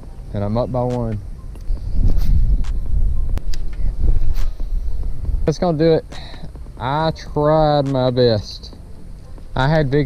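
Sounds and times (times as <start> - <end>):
wind buffeting microphone: 0.0 - 10.0
sharp clicks: 0.8 - 4.6
camera handling noise: 1.6 - 2.8.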